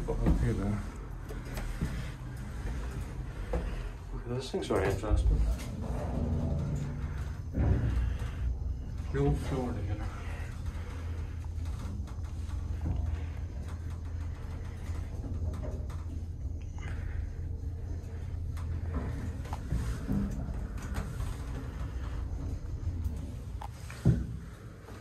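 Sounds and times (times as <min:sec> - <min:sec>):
lift machinery humming: 0:00.0 - 0:25.0.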